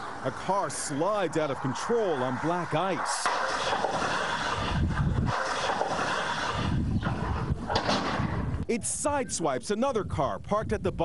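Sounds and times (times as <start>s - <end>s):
outdoor street noise: 0.0s - 9.0s
wind rushing over microphone: 0.0s - 11.0s.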